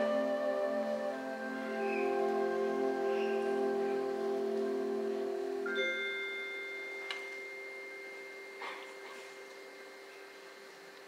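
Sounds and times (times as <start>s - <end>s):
mallet percussion ringing: 5.6s - 10.7s.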